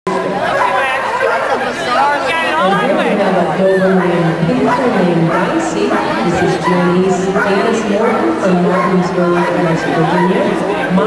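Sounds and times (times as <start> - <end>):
people talking: 0.1 - 11.0.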